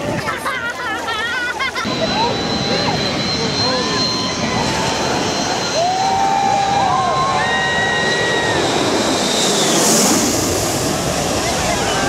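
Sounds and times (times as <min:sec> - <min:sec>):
crowd calling out and talking: 0:00.0 - 0:09.2, 0:11.0 - 0:12.0
jet engines whining: 0:01.7 - 0:12.0.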